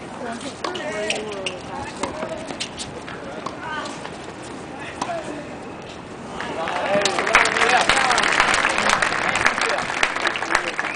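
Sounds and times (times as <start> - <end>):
spectators talking: 0.1 - 10.9
tennis racket strokes: 0.3 - 6.0.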